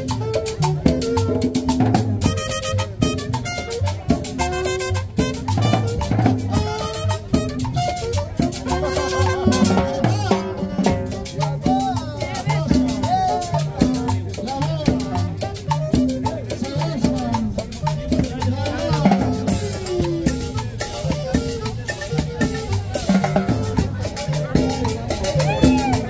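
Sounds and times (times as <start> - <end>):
latin dance music: 0.0 - 26.0.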